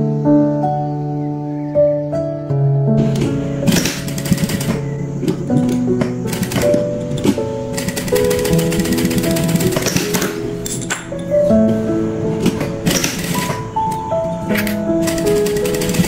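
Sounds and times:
background music: 0.0s - 16.0s
sewing machine stitching: 3.0s - 4.8s, 6.3s - 10.4s, 12.8s - 13.6s, 14.6s - 16.0s.

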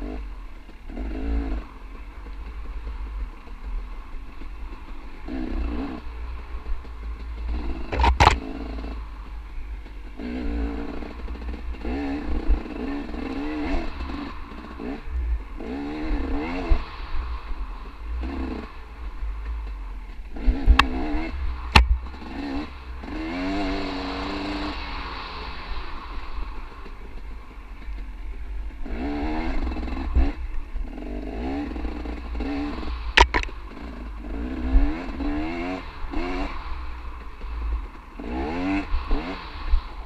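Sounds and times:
dirt bike engine revving: 0.0s - 40.0s.

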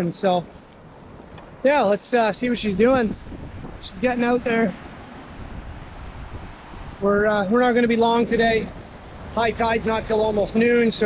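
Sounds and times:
wind buffeting microphone: 0.8s - 11.0s
small waves breaking: 3.1s - 11.0s.

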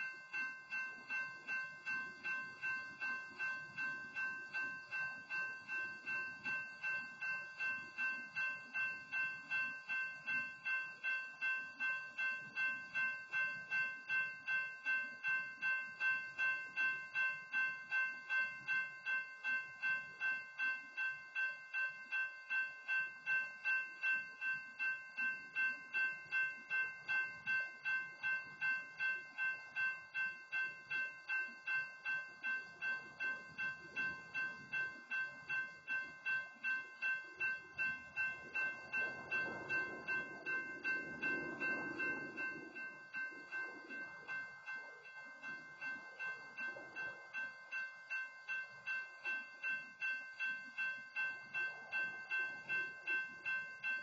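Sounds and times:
railroad crossing bell ringing: 0.0s - 54.0s.

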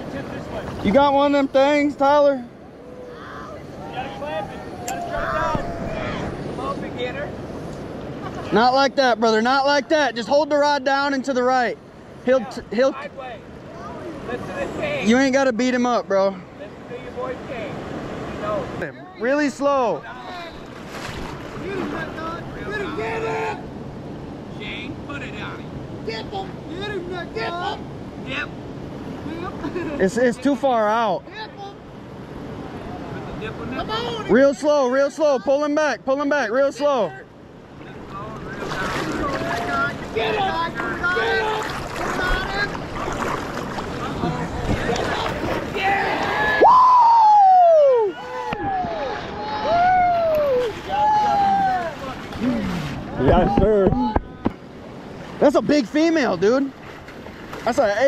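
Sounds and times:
voices calling out: 0.0s - 8.9s, 36.6s - 56.8s
river water rushing: 0.0s - 58.0s
person whooping: 2.8s - 6.3s, 46.4s - 52.6s.

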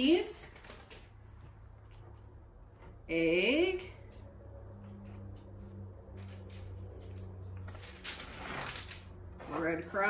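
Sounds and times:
steady low hum: 1.0s - 7.9s.

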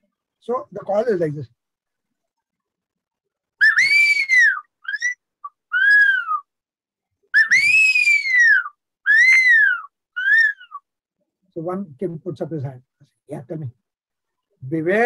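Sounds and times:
man whistling through fingers: 7.4s - 10.8s.

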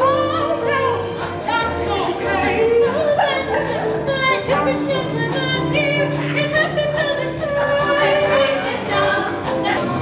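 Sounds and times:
instrumental accompaniment: 0.0s - 10.0s
voices singing: 0.0s - 10.0s.

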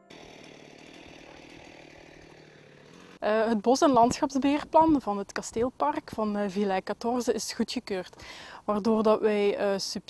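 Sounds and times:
small petrol engine running: 0.0s - 3.3s.

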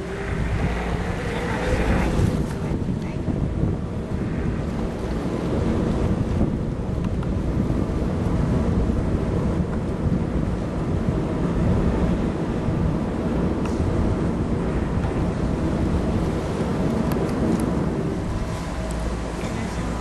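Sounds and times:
boat running noise: 0.0s - 20.0s
water: 0.0s - 20.0s
wind buffeting microphone: 0.0s - 20.0s.

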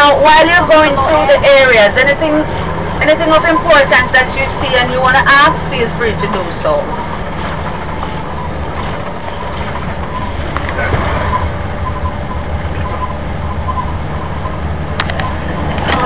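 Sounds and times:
engine drone: 0.0s - 16.0s
road noise: 0.0s - 16.0s.

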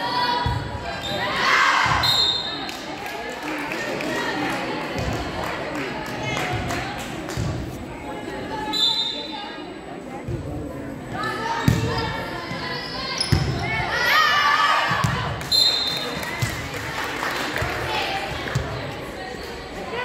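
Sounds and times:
voices calling out and cheering: 0.0s - 9.8s, 10.9s - 20.0s.

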